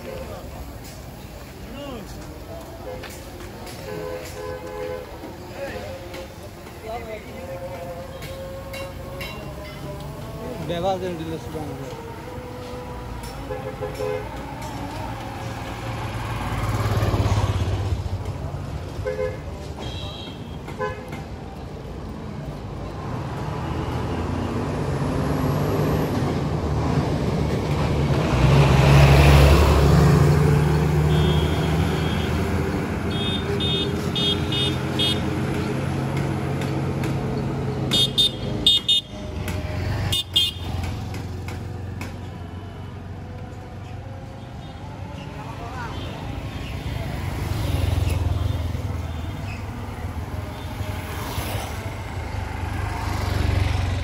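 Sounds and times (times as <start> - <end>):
vehicle engine rumble: 0.0 - 54.0
vehicle horn beeps: 31.1 - 32.4.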